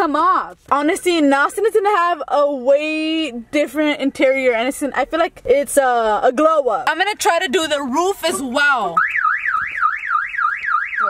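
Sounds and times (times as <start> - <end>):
car alarm siren warbling: 8.6 - 11.0.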